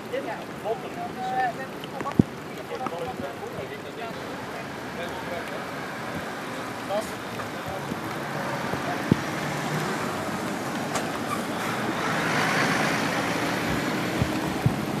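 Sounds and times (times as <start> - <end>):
motorway traffic noise: 0.0 - 15.0
tyres hissing on wet road: 0.0 - 15.0
vehicle passing: 4.7 - 15.0.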